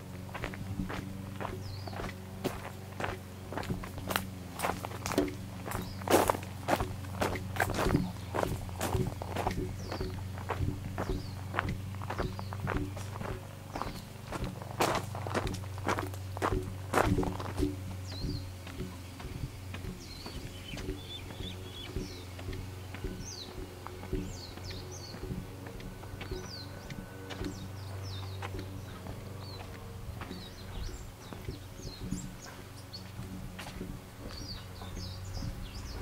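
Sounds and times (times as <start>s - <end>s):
footsteps crunching on gravel: 0.0s - 36.0s
steady low hum: 0.0s - 36.0s
faint bird chirps: 17.1s - 36.0s.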